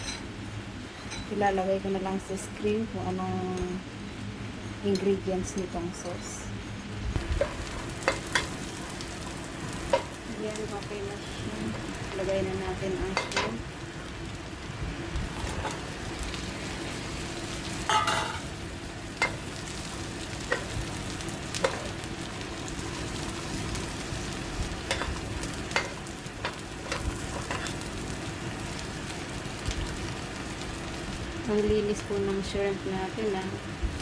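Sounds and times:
oil sizzling in a wok: 1.0s - 34.0s.

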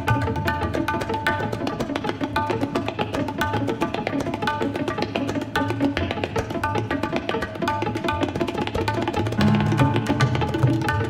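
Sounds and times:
tabla ringing treble strokes: 0.0s - 11.0s
tabla deep bass strokes: 9.4s - 11.0s.

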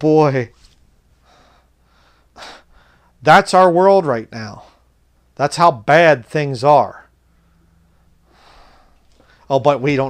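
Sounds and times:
faint breathing: 1.2s - 3.2s, 7.2s - 9.5s
man drawing a breath: 1.2s - 3.2s, 7.3s - 9.5s.

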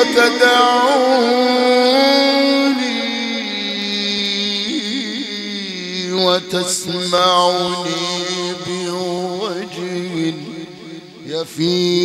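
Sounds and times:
man chanting a long note: 0.0s - 12.0s.

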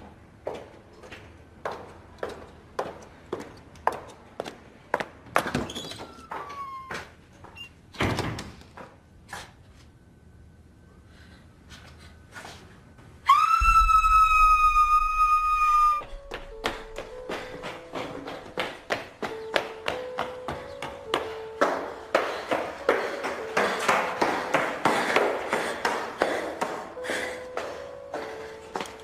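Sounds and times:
shrill whistle-like tone: 13.3s - 16.2s.

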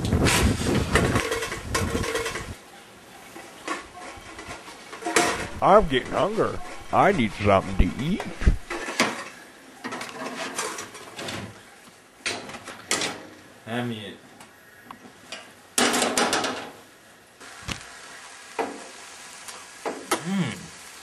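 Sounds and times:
person humming: 20.1s - 20.9s.

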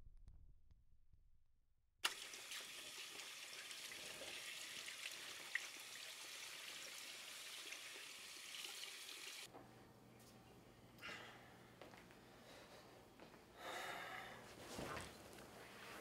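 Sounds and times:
tap water running into sink: 2.0s - 9.5s.

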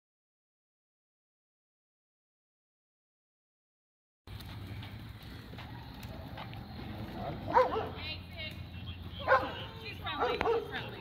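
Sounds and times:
voices: 5.2s - 11.0s
small dog barking: 7.4s - 8.0s, 9.2s - 10.9s.

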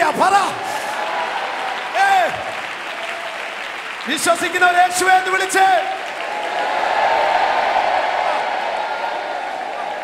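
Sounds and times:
congregation applauding: 0.0s - 10.0s.

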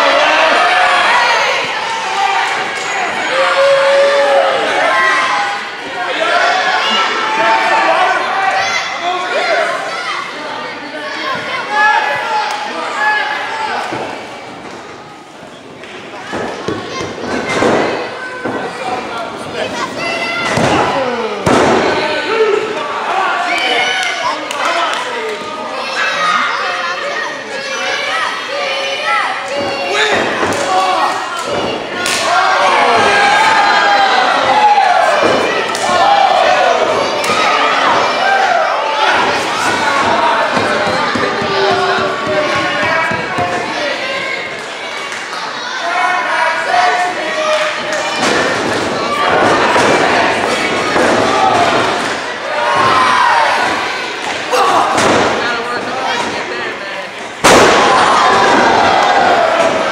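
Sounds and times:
crowd voices: 0.0s - 59.9s.

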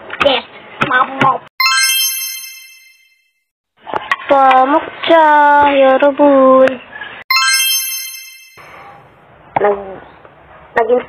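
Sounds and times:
bright bell-like chime: 1.6s - 3.4s, 7.3s - 9.1s.

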